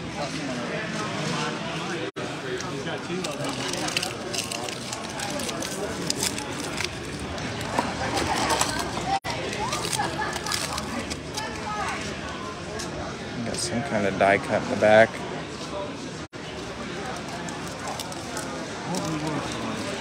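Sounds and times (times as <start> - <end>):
background chatter of voices: 0.0 - 20.0
foil wrapper crinkling and tearing: 3.0 - 11.7, 16.7 - 20.0.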